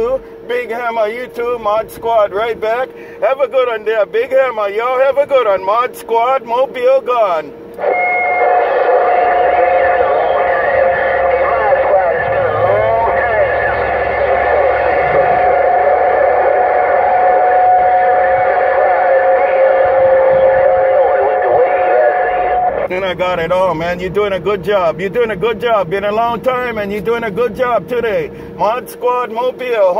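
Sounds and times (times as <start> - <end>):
garbled overlapping radio voices: 0.0 - 29.9
radio whistles: 7.7 - 22.9.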